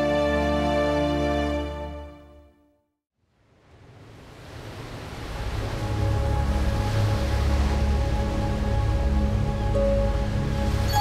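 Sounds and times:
ocean waves: 3.2 - 11.0
soft sustained music notes: 5.6 - 11.0.

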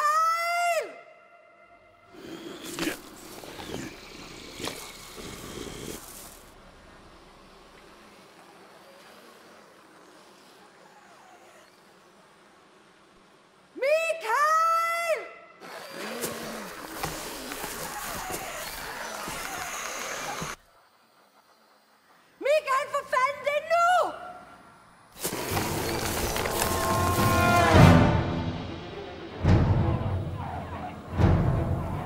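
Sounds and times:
woman shouting a name: 0.0 - 1.1, 13.8 - 15.4, 22.4 - 24.3
harsh rough noise: 25.2 - 31.9.

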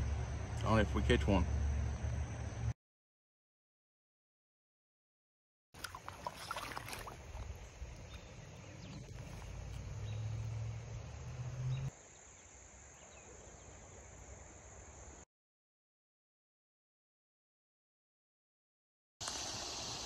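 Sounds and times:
steady hiss: 19.2 - 20.0.

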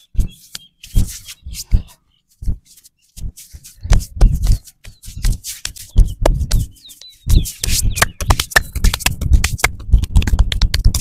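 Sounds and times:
hands slapping and rubbing back: 0.0 - 11.0.

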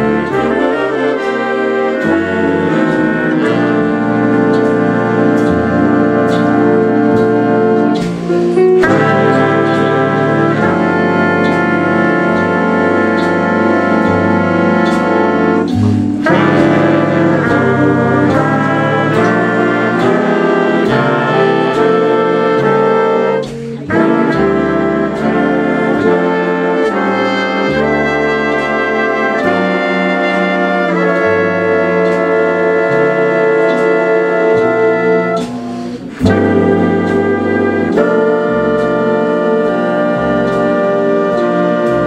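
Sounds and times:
swing big band playing: 0.0 - 42.0.

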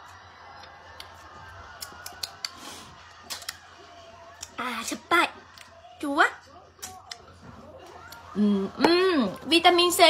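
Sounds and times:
mouth clicks and smacks: 1.8 - 2.6.

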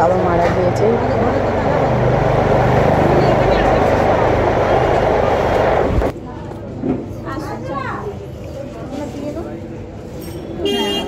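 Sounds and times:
babble of many people talking: 0.0 - 11.0.

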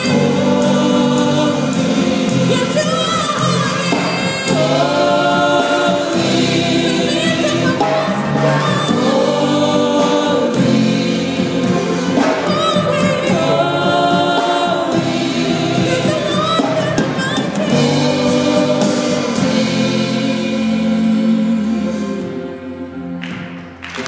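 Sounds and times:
woman singing lead: 0.0 - 23.2
choir singing: 0.0 - 23.6
band playing: 0.0 - 24.0.

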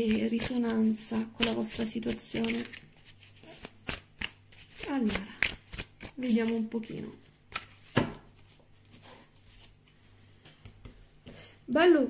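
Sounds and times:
cards being shuffled: 0.0 - 11.2.

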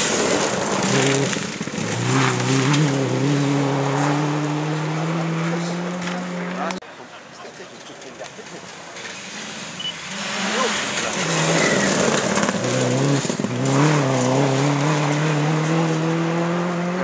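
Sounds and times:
gravel spraying from tyres: 0.0 - 4.6, 7.8 - 16.0
rally car engine at full throttle: 0.0 - 6.8, 7.8 - 17.0.

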